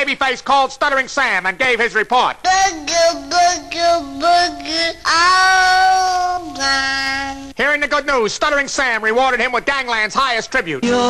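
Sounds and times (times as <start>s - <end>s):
high voice singing pop: 2.4s - 7.6s, 10.8s - 11.0s.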